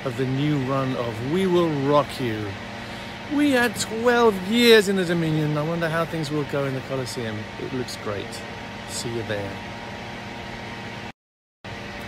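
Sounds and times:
faint hum: 0.0 - 11.1.

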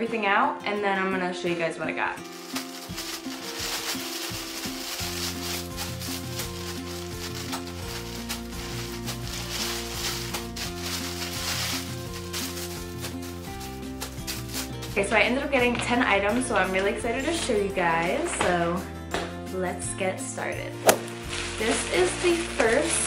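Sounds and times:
plastic packaging crinkling: 2.2 - 15.0, 20.9 - 23.0
background music with bass: 4.6 - 23.0.

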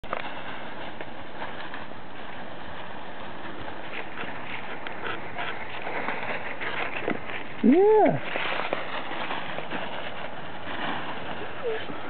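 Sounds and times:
dry leaves rustling and crunching: 0.0 - 12.0.

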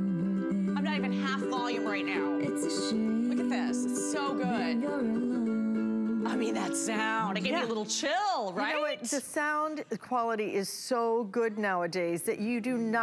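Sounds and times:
person singing: 0.0 - 7.7.

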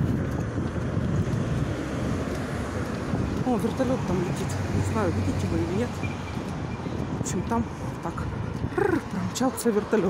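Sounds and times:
street traffic: 0.0 - 10.0
wind buffeting microphone: 0.0 - 10.0.

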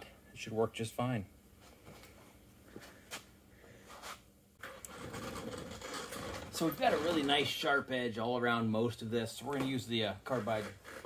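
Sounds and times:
steady hum with hiss: 0.0 - 11.0.

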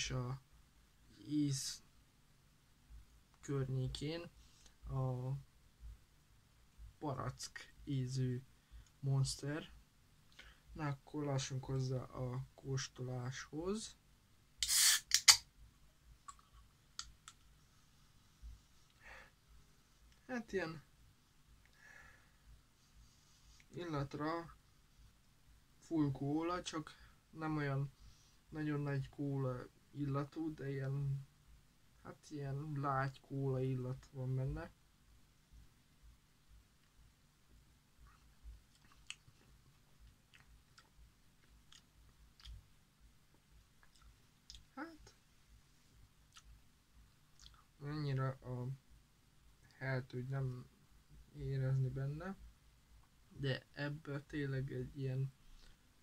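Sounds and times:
wet mouth clicks and lip smacks: 14.6 - 15.4, 38.6 - 39.4, 40.0 - 42.6, 47.3 - 47.6.

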